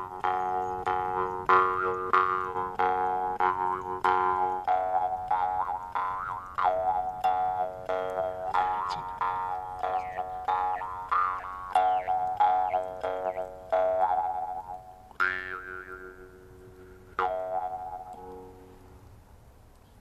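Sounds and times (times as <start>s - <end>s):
jaw harp twanging: 0.0s - 16.2s, 17.2s - 18.5s.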